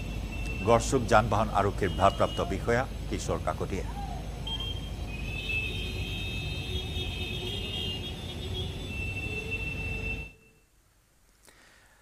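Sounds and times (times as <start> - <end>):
road traffic rumble: 0.0 - 10.5.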